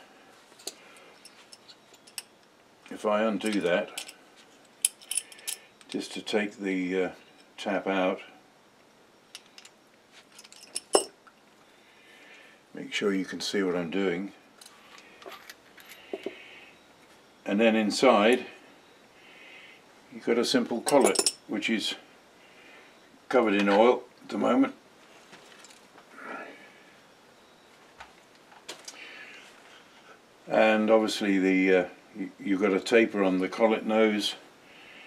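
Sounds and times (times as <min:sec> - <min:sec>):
small metallic clicks and clinks: 0:00.6 - 0:06.0, 0:09.3 - 0:11.4, 0:14.6 - 0:16.4, 0:20.8 - 0:21.4.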